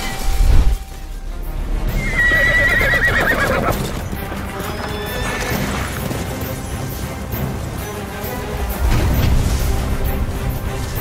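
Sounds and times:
background music: 0:00.0 - 0:11.0
horse whinnying: 0:02.0 - 0:06.3.

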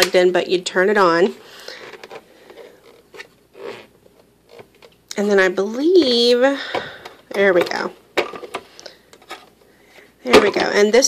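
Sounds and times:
plastic rubbing: 0:01.7 - 0:05.0.

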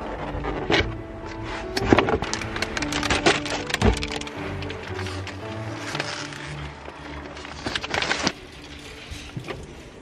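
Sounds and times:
background music: 0:00.0 - 0:10.0
packages knocking and clattering: 0:01.8 - 0:06.4.

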